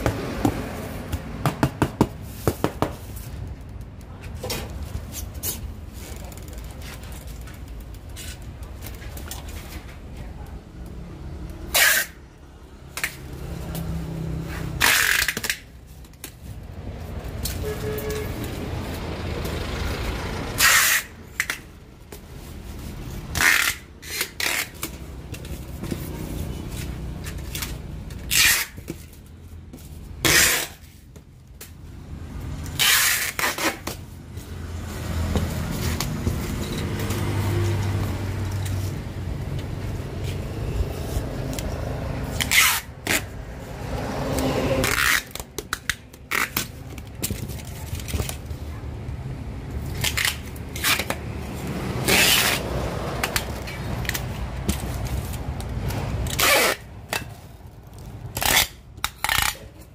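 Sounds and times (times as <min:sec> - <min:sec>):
packing tape ripping off roll: 0:14.8 - 0:15.7, 0:32.8 - 0:34.0, 0:53.2 - 0:59.9.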